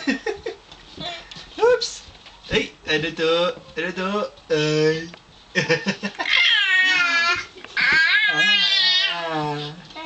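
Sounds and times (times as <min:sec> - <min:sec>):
baby squealing: 0:06.3 - 0:09.2
baby vocal sounds: 0:06.4 - 0:10.0.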